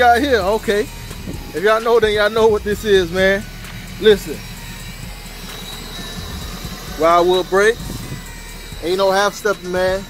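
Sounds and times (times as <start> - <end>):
wind buffeting microphone: 0.0 - 5.6, 6.2 - 10.0
faint steady high tone: 0.0 - 10.0.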